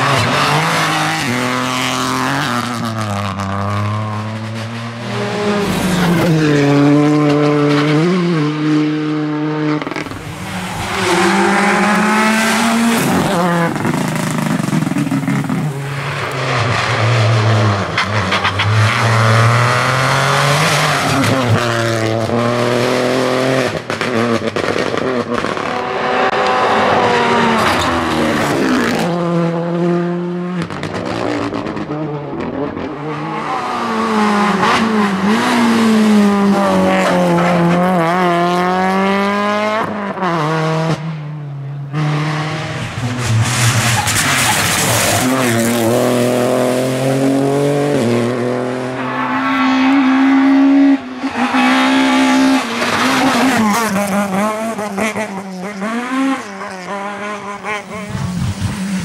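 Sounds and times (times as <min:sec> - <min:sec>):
rally car engines revving: 0:00.0 - 0:59.0.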